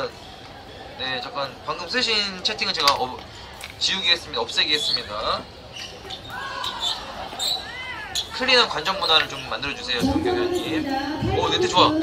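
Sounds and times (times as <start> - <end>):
sneakers squeaking on court: 4.8 - 10.0.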